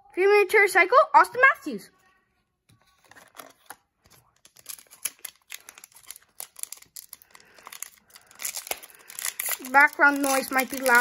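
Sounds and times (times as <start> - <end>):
foil wrapper crinkling and tearing: 4.2 - 11.0.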